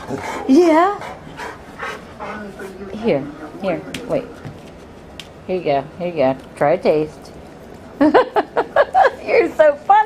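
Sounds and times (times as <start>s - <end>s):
dog panting: 0.0s - 4.5s.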